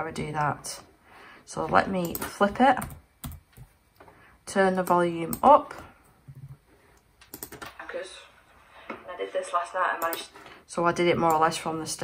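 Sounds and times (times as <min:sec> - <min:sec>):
laptop keys clicking: 0:07.2 - 0:07.8.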